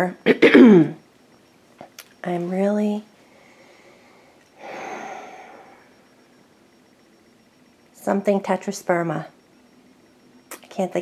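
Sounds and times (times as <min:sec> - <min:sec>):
faint high steady tone: 0:00.0 - 0:11.0.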